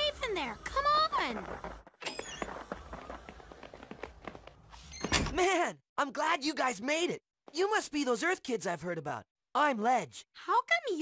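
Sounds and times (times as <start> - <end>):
cartoon footsteps on wooden floor: 0.7 - 5.4.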